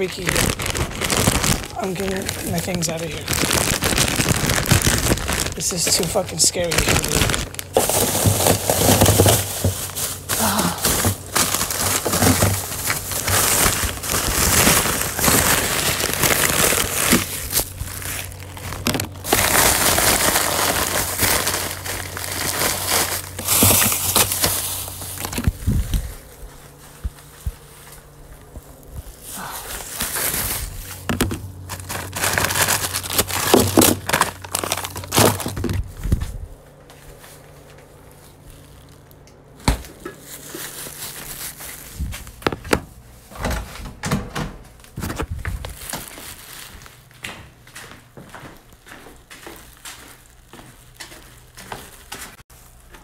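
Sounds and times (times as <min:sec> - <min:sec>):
plastic packaging crinkling: 0:00.0 - 0:43.8, 0:44.8 - 0:53.0.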